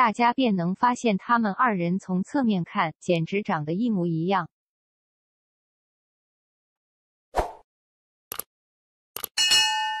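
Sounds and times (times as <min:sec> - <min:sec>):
bright bell ding: 0:09.4 - 0:10.0.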